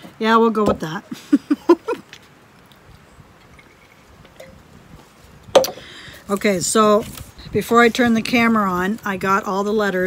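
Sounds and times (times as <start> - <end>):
woman laughing: 1.1 - 2.1.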